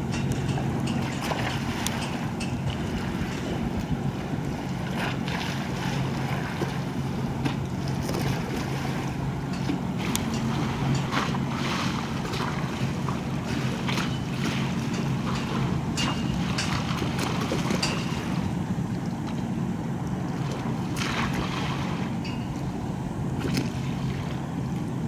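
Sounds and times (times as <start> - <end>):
distant ship engine drone: 0.0 - 25.0
small waves splashing: 0.0 - 25.0.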